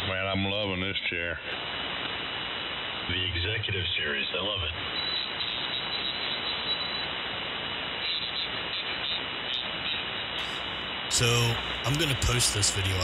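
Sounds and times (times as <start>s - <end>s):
radio band noise hiss: 0.0s - 13.0s.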